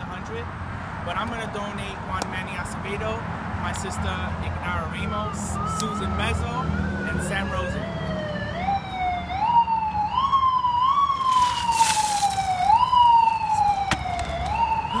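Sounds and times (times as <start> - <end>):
siren wailing: 5.0 - 15.0.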